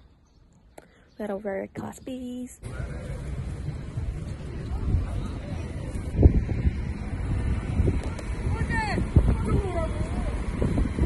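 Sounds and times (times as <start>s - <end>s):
car driving rumble: 2.6s - 11.0s
wind buffeting microphone: 2.6s - 11.0s.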